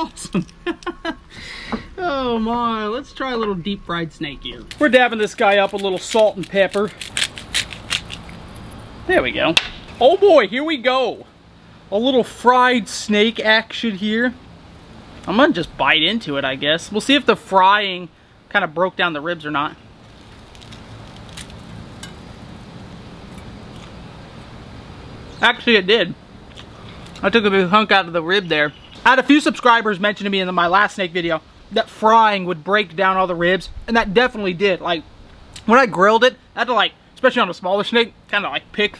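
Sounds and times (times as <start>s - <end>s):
steady low hum: 0.0s - 38.9s
spice grinder crunching clicks: 4.7s - 8.4s
man chewing crispy food: 4.7s - 8.9s, 20.0s - 24.0s
faint crunches: 20.0s - 22.3s.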